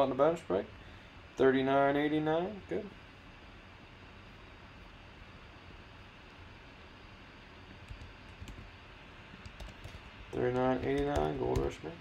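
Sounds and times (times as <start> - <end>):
keyboard typing: 7.8 - 8.7, 9.3 - 11.8.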